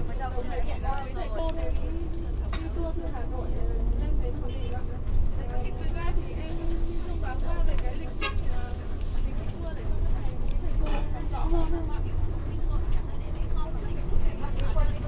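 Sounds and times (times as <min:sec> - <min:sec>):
coach engine rumble: 0:00.0 - 0:15.0.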